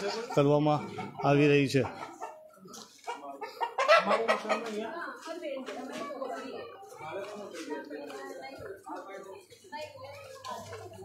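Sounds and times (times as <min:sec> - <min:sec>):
chicken clucking: 0:00.0 - 0:06.8.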